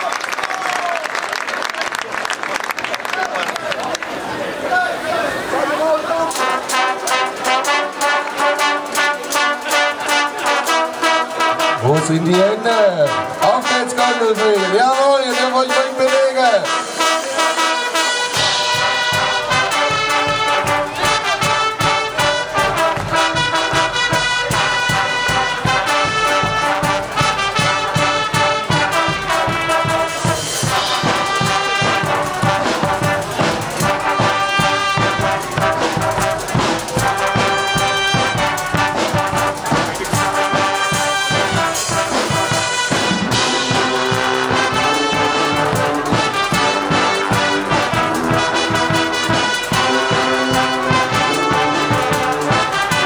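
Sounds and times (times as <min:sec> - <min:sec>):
brass band playing: 0:04.2 - 0:53.0
driving drum beat: 0:06.3 - 0:53.0.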